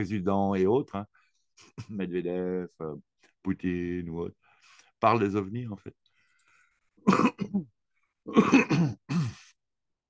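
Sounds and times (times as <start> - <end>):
man clearing throat and coughing: 7.0 - 9.6.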